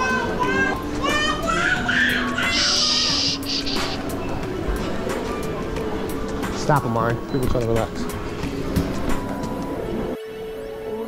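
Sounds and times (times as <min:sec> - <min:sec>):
child calling out: 0:00.0 - 0:03.8
crowd hubbub indoors: 0:00.0 - 0:10.2.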